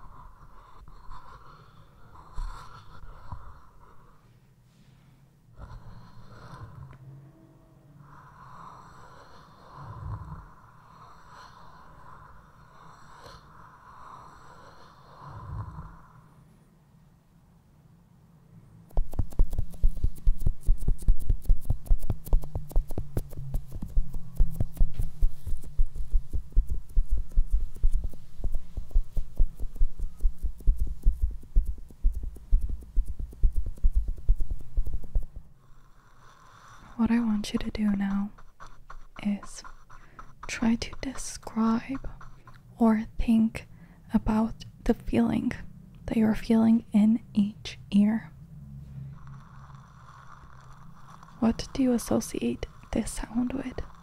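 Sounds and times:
quiet steady hum: 0.0s - 54.0s
fingers rubbing on a microphone: 18.9s - 35.5s, 36.5s - 43.6s, 49.2s - 54.0s
soft low thumps: 18.9s - 35.5s.

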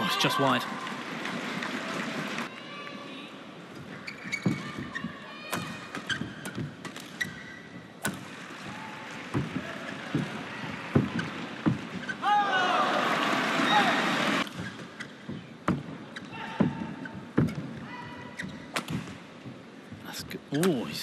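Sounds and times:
crowd noise: 0.0s - 5.6s, 7.8s - 14.5s
shoes squeaking on court: 3.7s - 8.4s, 9.2s - 12.2s, 14.4s - 19.8s.

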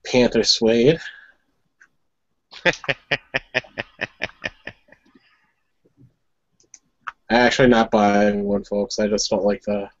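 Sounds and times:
person laughing: 2.6s - 5.1s.

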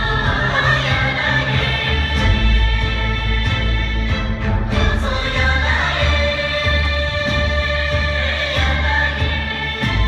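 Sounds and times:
choir singing sustained notes: 0.0s - 10.0s.

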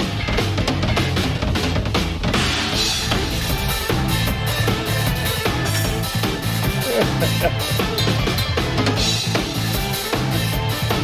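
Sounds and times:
drum kit played fast: 0.0s - 11.0s
rock backing track: 0.0s - 11.0s.

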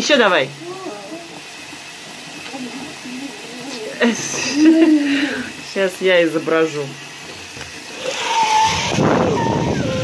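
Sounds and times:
breathy whistle hiss: 8.0s - 10.0s
water whistle warbling: 8.1s - 10.0s.

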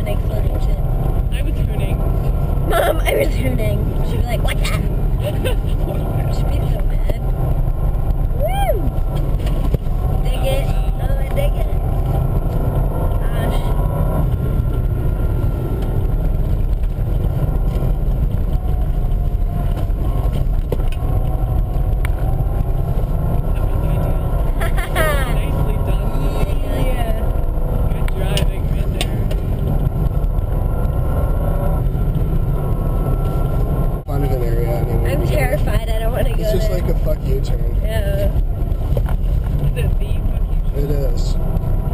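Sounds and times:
car engine rumble: 0.0s - 41.9s
tyres on snowy road: 0.0s - 41.9s.

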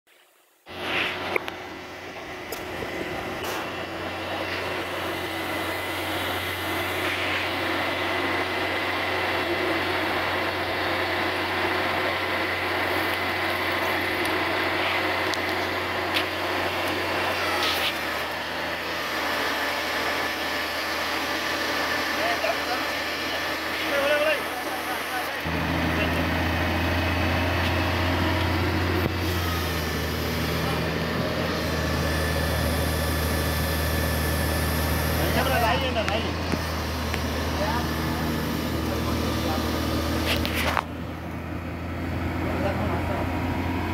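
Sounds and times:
diesel engine running: 0.7s - 43.9s.

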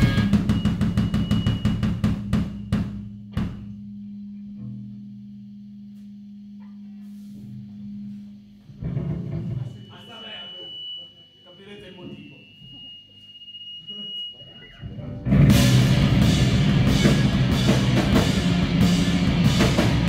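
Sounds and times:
rock band drum hits: 0.0s - 3.8s, 15.3s - 20.0s
guitar amp notes ringing: 0.0s - 10.5s, 14.5s - 20.0s.

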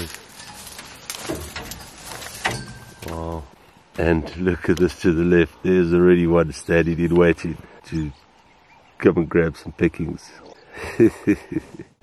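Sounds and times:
twigs snapping: 0.0s - 3.2s
dry bush rustling and crackling: 0.0s - 10.5s.

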